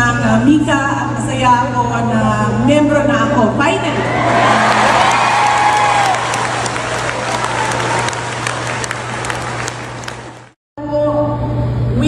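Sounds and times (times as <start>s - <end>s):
voices cheering: 3.9s - 10.5s
audience applauding: 4.1s - 10.6s.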